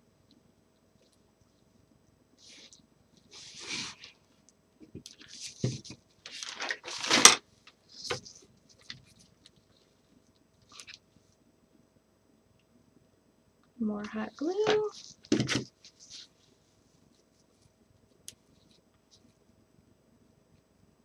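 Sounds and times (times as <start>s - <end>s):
burlap fabric rustling: 5.2s - 7.4s.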